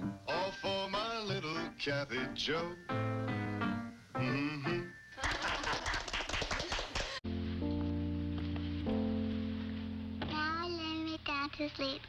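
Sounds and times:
people applauding: 5.2 - 7.2.

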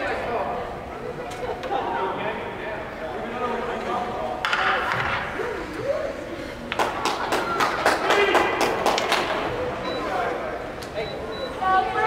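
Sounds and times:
people chatting indistinctly: 0.0 - 12.0.

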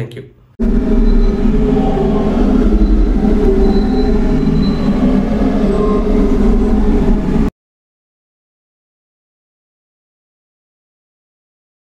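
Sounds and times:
loud mechanical rumble: 0.6 - 7.5.

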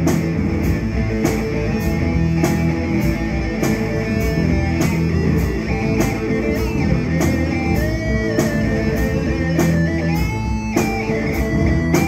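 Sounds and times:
electric guitars playing blues-rock: 0.0 - 12.0
steady drum beat: 0.0 - 12.0.

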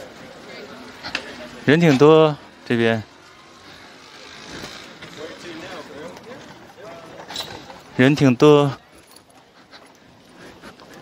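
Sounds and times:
road traffic hum: 0.0 - 11.0.

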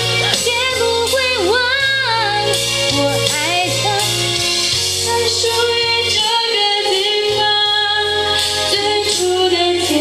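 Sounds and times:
pop backing track with bass: 0.0 - 10.0
woman singing pop ballad: 0.0 - 10.0.

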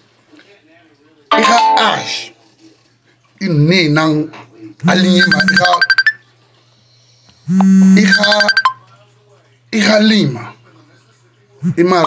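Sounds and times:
electronic ringtone tune: 5.0 - 6.2, 8.0 - 8.8.

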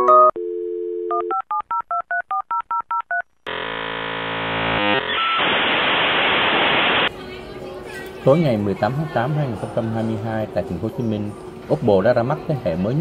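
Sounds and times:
dial tone: 0.0 - 1.9
loud steady hiss: 5.2 - 7.1.

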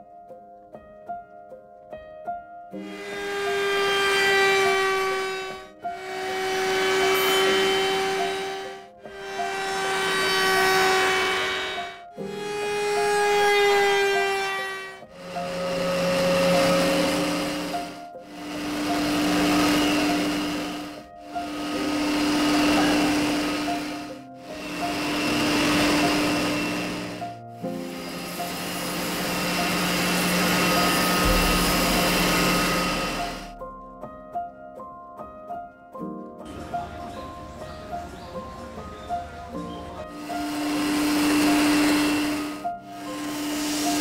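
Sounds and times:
router bit trimming wood: 2.8 - 33.6, 40.1 - 44.0
spindle sander: 2.8 - 33.6, 40.1 - 44.0
steady motor hum: 15.2 - 27.2, 28.0 - 33.5, 40.2 - 44.0.

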